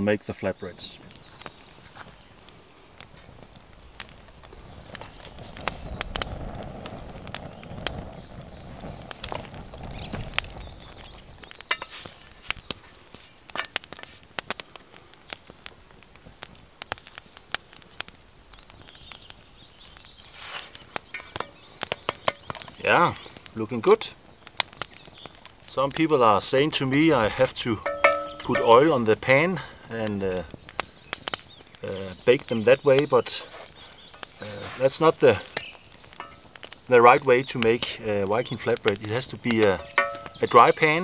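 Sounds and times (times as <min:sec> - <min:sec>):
wood fire crackling and snapping: 0:00.0 - 0:41.0.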